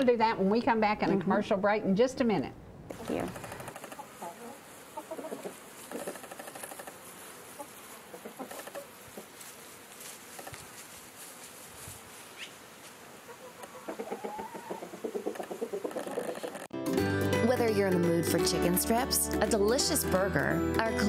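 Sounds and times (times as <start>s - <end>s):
chickens clucking: 2.9s - 9.7s, 12.3s - 16.7s.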